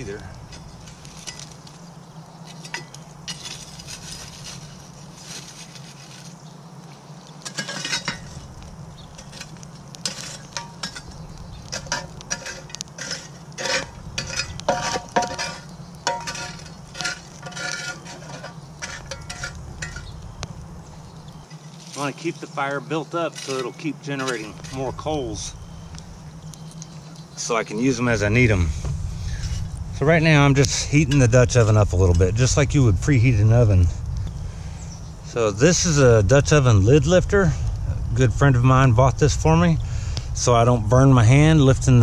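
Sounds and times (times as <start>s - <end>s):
shovel scraping coals: 0.0s - 32.5s
coals clinking on metal lid: 0.2s - 1.8s, 2.5s - 4.8s, 7.3s - 20.2s, 23.2s - 24.8s.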